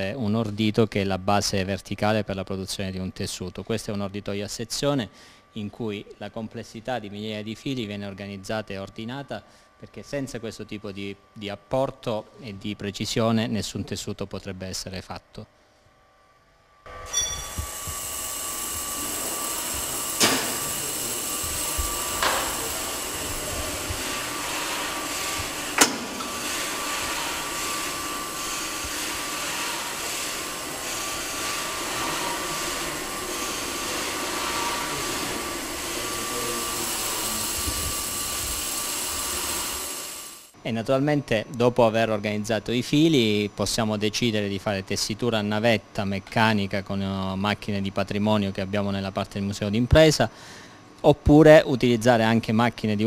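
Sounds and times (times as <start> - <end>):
machine running with high whine: 16.8 - 40.6.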